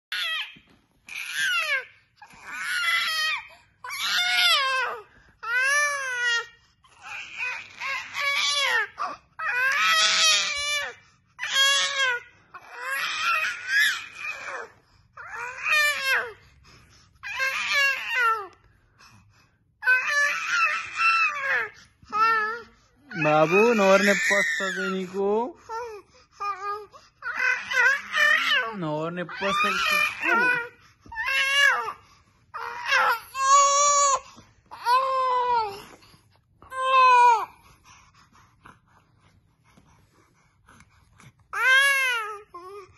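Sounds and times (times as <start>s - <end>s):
baby crying: 0.1s - 16.4s, 17.2s - 18.6s, 19.8s - 36.0s, 36.7s - 37.6s, 41.5s - 42.9s.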